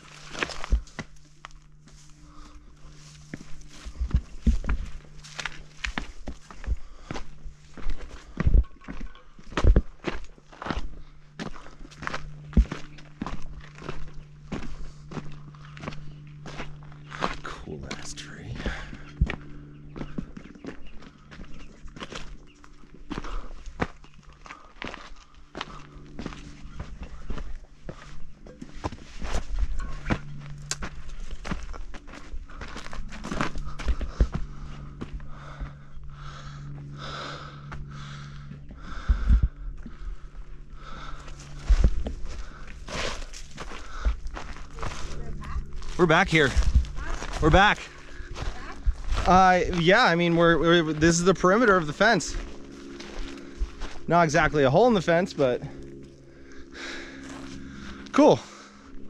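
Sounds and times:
footsteps on rocky trail: 0.0s - 59.0s
steady low hum: 0.0s - 59.0s.

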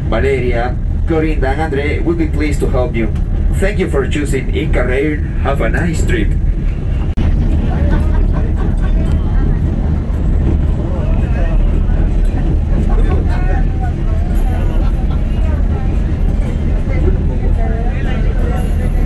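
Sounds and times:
people talking: 0.0s - 19.0s
train running inside carriage: 0.0s - 19.0s.

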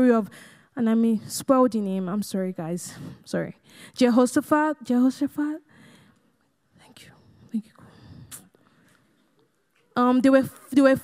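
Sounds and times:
person whispering: 6.7s - 8.5s.

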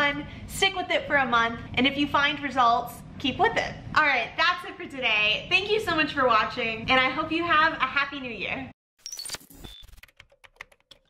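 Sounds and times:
computer keyboard typing: 9.8s - 11.0s.

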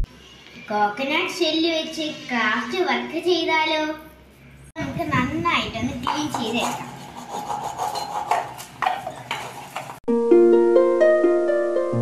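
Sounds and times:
coconut shell rasping: 6.1s - 10.0s.

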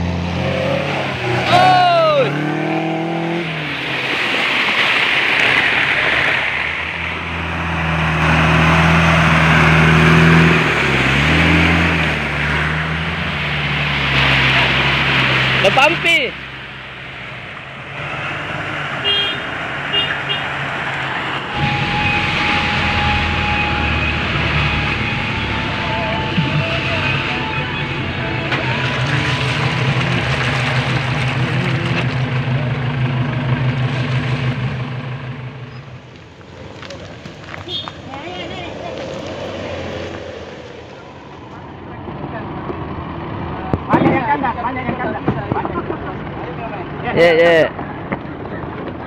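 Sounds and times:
off-road vehicle engines driving: 0.0s - 49.0s.

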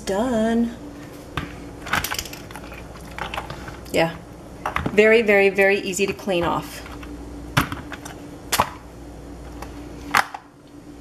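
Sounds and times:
steady faint hum: 0.0s - 11.0s.

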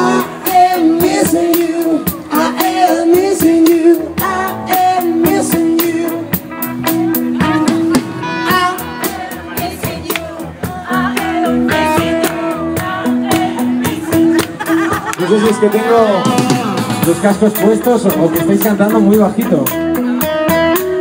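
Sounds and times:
man singing: 0.0s - 7.9s, 15.2s - 19.5s
drum kit: 0.0s - 21.0s
electric guitar: 0.0s - 21.0s.

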